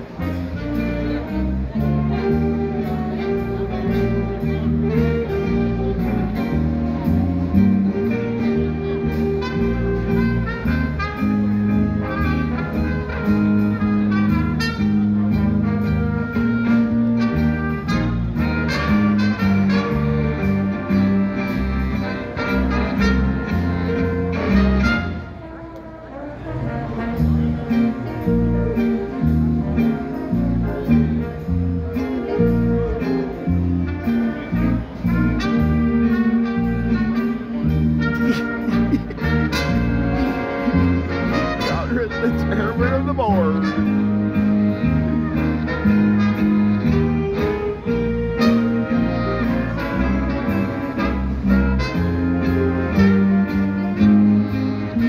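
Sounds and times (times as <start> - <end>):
big band jazz: 0.0 - 55.0.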